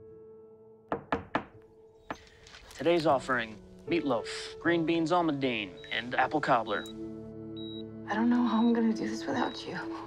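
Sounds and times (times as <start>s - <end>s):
knocks on a door: 0.9s - 1.6s.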